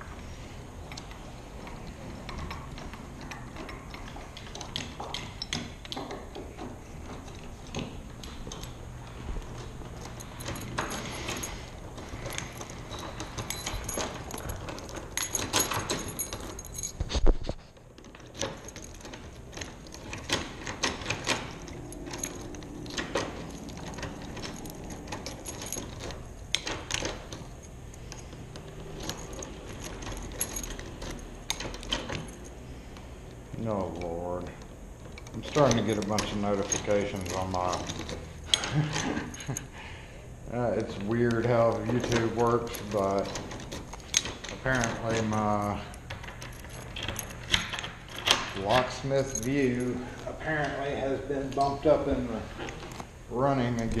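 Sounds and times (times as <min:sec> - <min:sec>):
keys jangling: 0:00.6 - 0:39.8, 0:40.7 - 0:54.0
doorknob and deadbolt clicks: 0:09.4 - 0:16.7, 0:18.0 - 0:32.6, 0:46.0 - 0:48.8.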